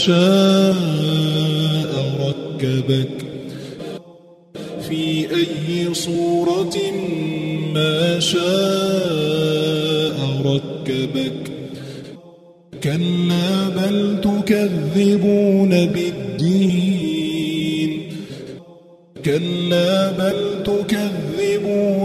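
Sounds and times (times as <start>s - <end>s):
person chanting recitation: 0.0s - 22.0s.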